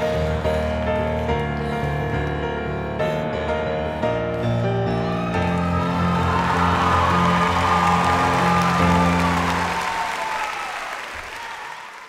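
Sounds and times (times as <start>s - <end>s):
piano chords: 0.0s - 10.7s
audience applause: 5.0s - 12.0s.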